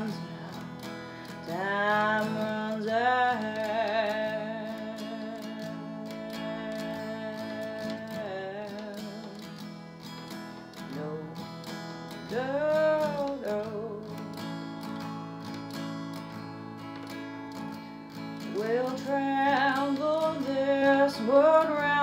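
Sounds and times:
person singing: 0:00.0 - 0:09.7, 0:10.7 - 0:14.4, 0:18.4 - 0:22.0
strummed acoustic guitar: 0:00.0 - 0:22.0.

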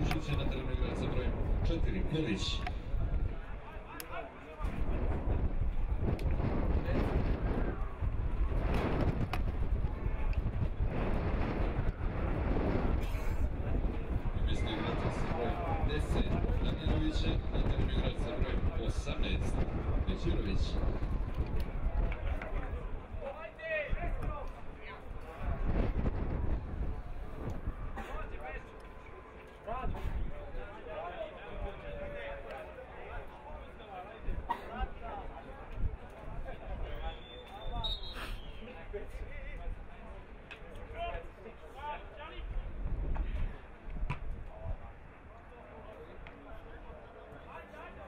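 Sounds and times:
wind buffeting microphone: 0:00.0 - 0:41.3, 0:42.3 - 0:45.3.

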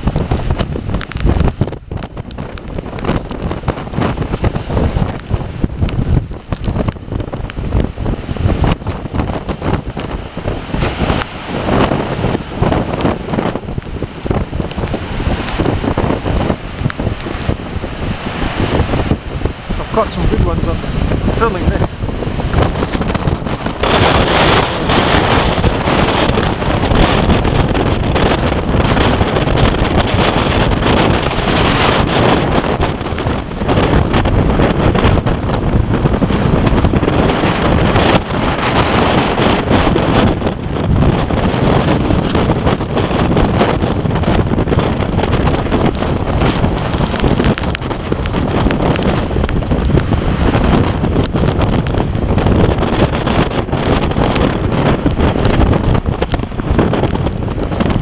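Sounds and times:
heavy surf breaking: 0:00.0 - 0:58.0
strong wind buffeting microphone: 0:00.0 - 0:58.0.

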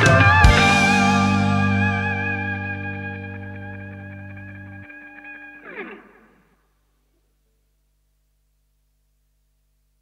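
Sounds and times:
bass guitar note: 0:00.0 - 0:06.2
distorted electric guitar chord: 0:00.0 - 0:06.6.

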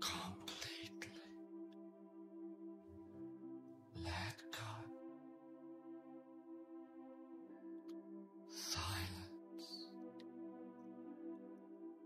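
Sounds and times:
ambient music: 0:00.0 - 0:12.0.

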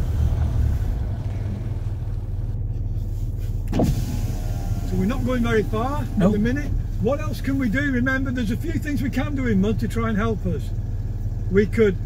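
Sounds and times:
engine rumbling at low revs: 0:00.0 - 0:12.0.

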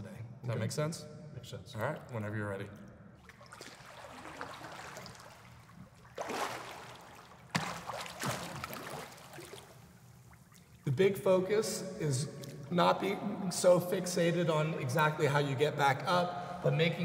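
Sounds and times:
pool water splashing: 0:03.1 - 0:11.0.

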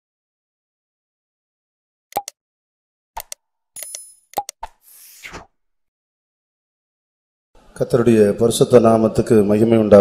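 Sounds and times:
button clicks and pops: 0:02.1 - 0:02.4, 0:03.2 - 0:05.4
short whoosh: 0:04.9 - 0:05.6.

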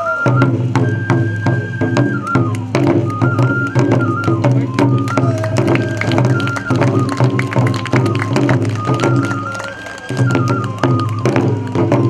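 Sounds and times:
bamboo flute: 0:00.0 - 0:12.0.

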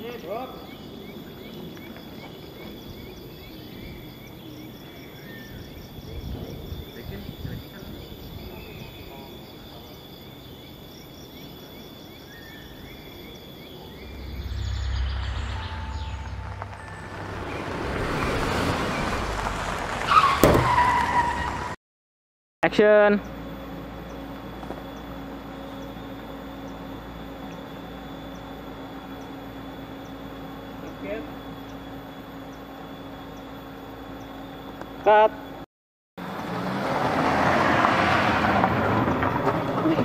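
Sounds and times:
vehicle passing: 0:13.6 - 0:21.8, 0:36.2 - 0:40.0.

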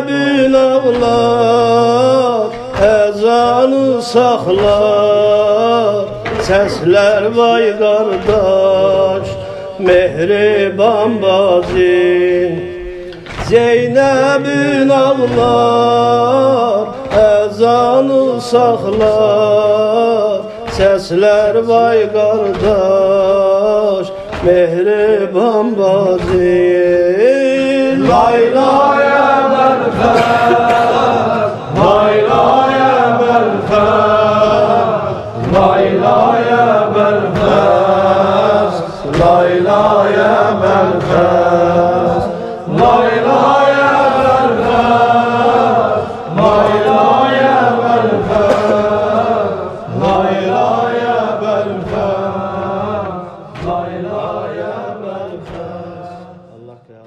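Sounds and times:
person chanting a lament: 0:00.0 - 0:57.0.

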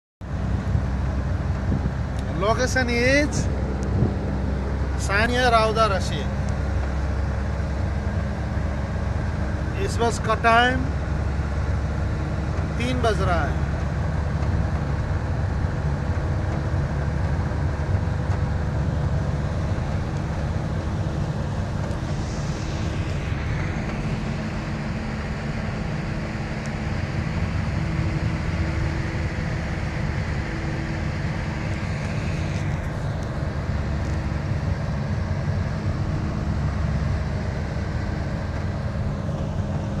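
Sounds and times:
bus engine drone: 0:00.2 - 0:40.0
rushing noise: 0:00.4 - 0:40.0.

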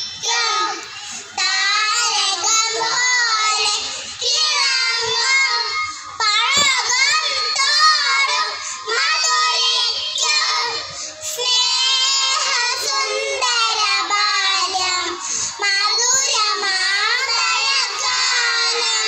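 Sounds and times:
children singing over loudspeakers: 0:00.0 - 0:19.0.

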